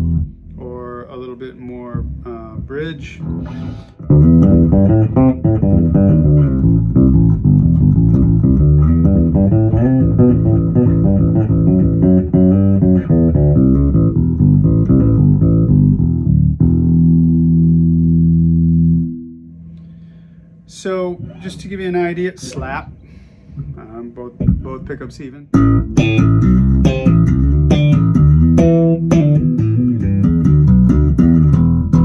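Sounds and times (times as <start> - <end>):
electric bass played fingerstyle: 0.0 - 22.8, 24.4 - 32.0.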